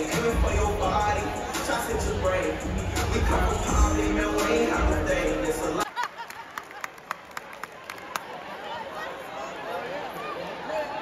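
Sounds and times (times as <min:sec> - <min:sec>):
faint crowd murmur: 0:00.0 - 0:05.8, 0:06.4 - 0:11.0
audience clapping: 0:05.8 - 0:08.5.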